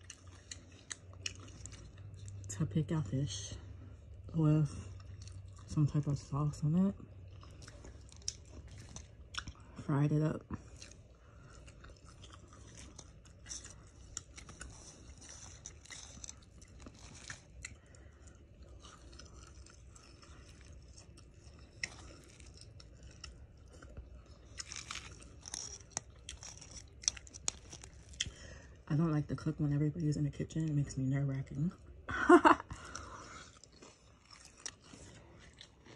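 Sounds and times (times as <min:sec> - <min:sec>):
chewing crispy fried fish: 0:00.0 - 0:29.6, 0:31.4 - 0:35.9.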